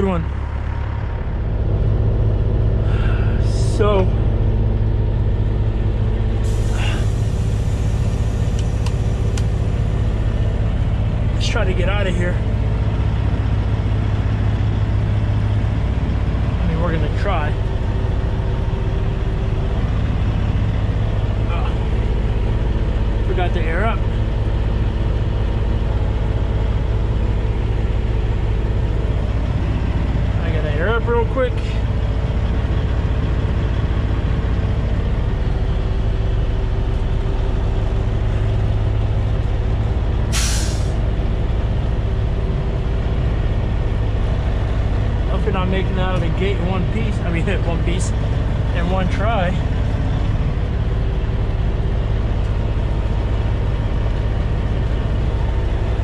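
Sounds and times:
diesel truck engine rumble: 0.0s - 56.0s
air brake hiss: 6.4s - 7.6s, 40.3s - 41.0s.

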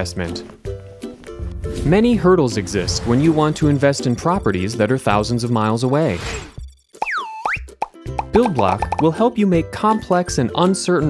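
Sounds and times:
swooping whistle tone: 7.0s - 7.7s.

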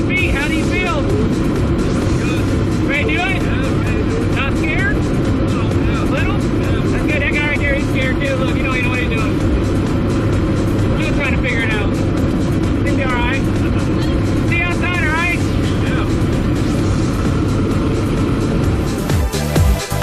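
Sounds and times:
plane engine and propeller drone: 0.0s - 20.0s.

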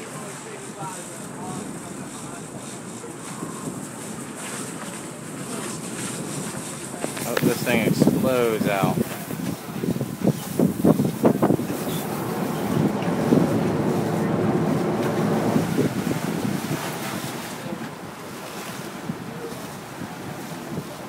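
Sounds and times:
boat engines running: 0.0s - 21.0s
water rushing and churning: 0.0s - 21.0s
wind buffeting microphone: 0.6s - 21.0s.

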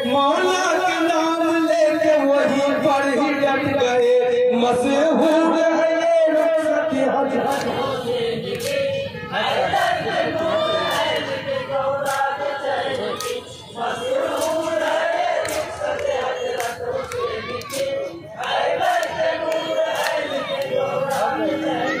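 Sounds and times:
men chanting in unison: 0.3s - 22.0s.

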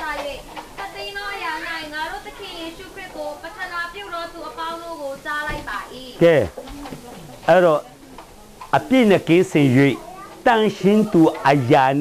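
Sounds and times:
man talking: 6.2s - 6.5s, 8.8s - 12.0s.

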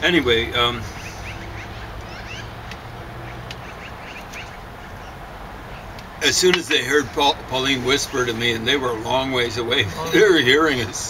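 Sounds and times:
birds chirping faintly: 0.1s - 7.6s.

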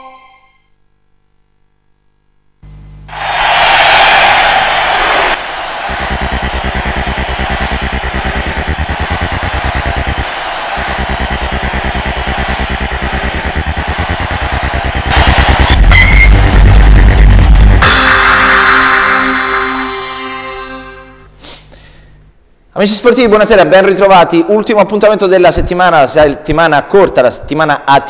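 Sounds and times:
electronic theme music: 4.2s - 21.3s.

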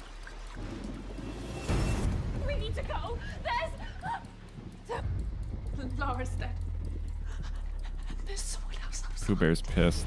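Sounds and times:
steady low drone: 3.1s - 10.0s.

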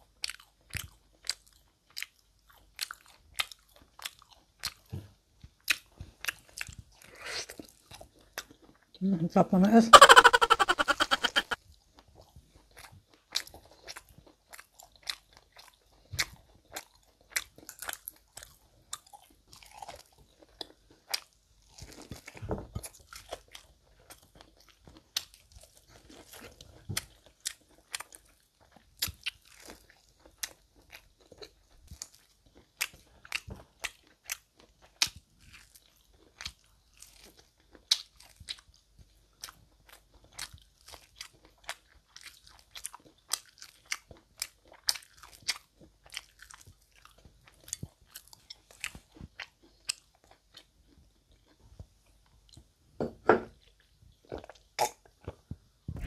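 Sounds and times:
crunchy chewing of corn: 0.0s - 9.0s, 11.3s - 52.7s, 53.6s - 55.5s.

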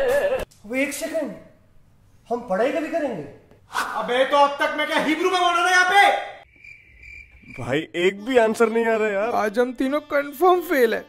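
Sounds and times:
cricket chirping: 6.4s - 8.0s.

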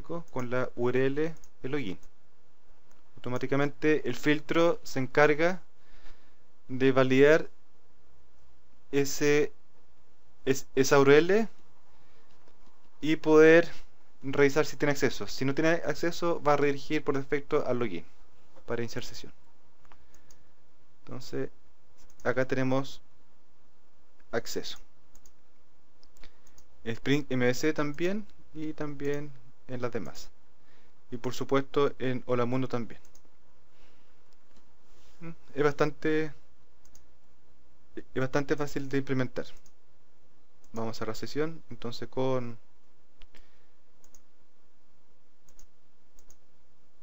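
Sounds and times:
man talking: 0.0s - 2.0s, 3.2s - 5.7s, 6.7s - 7.5s, 8.9s - 9.6s, 10.4s - 11.6s, 13.0s - 19.4s, 21.1s - 21.5s, 22.2s - 23.0s, 24.3s - 24.8s, 26.8s - 30.3s, 31.1s - 33.1s, 35.2s - 36.4s, 38.0s - 39.6s, 40.7s - 42.6s
faint steady hiss: 0.0s - 47.0s
computer mouse clicks: 19.8s - 20.4s, 22.0s - 22.3s, 24.2s - 25.4s, 26.0s - 26.7s, 33.0s - 33.3s, 36.8s - 37.1s, 38.9s - 39.8s, 43.2s - 44.3s, 45.4s - 46.5s.

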